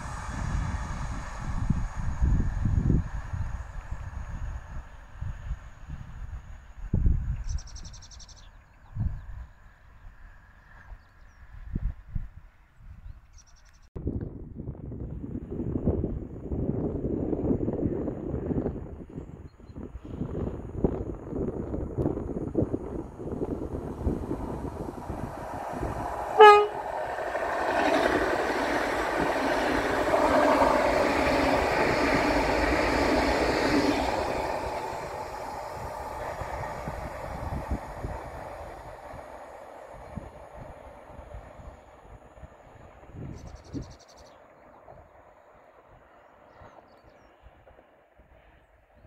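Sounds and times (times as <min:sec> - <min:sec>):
wind noise on microphone: 0:00.0 - 0:10.3, 0:10.9 - 0:13.4, 0:14.0 - 0:44.0
train passing at speed: 0:00.0 - 0:12.8, 0:14.6 - 0:49.0
train horn blast: 0:26.2 - 0:27.1.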